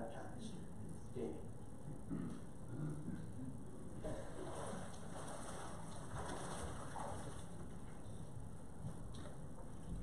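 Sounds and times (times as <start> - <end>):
water sloshing: 4.0 - 10.0.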